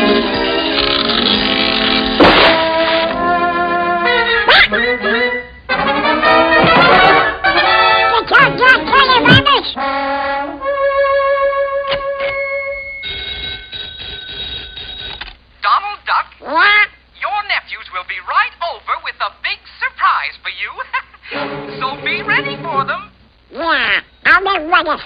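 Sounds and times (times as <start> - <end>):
cartoon duck voice quacking: 8.1 - 9.8, 16.1 - 17.0, 23.5 - 25.0
fast garbled duck-voice chatter: 15.9 - 21.1.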